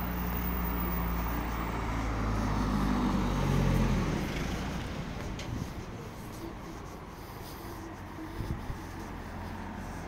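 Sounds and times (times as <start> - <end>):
car engine humming: 0.0 - 10.0.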